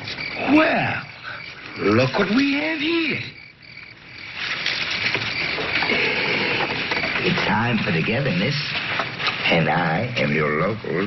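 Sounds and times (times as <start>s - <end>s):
crickets chirping: 0.0s - 11.0s
frogs croaking: 0.0s - 11.0s.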